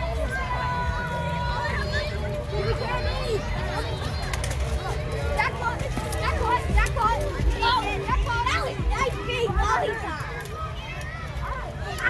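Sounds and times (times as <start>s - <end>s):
children calling out excitedly: 0.0s - 12.0s.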